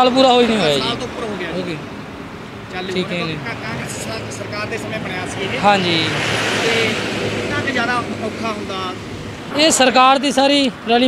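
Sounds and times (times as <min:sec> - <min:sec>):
man's voice: 0:00.0 - 0:01.9, 0:02.7 - 0:11.0
truck passing on highway: 0:00.0 - 0:11.0.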